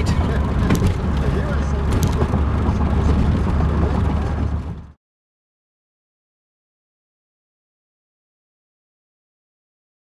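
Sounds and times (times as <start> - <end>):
car road and engine rumble: 0.0 - 5.0.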